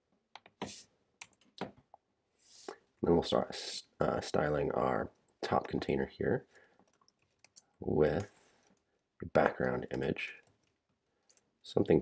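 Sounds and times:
keyboard typing: 6.8s - 8.8s.

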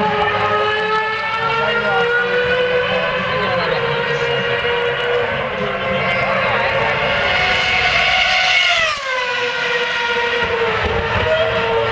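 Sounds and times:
racing car engine passing: 0.0s - 11.9s.

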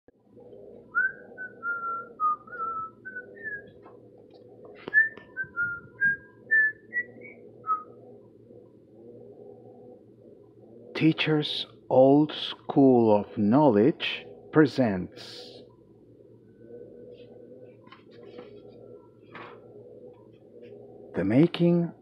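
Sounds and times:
person whistling a tune: 4.9s - 7.9s.

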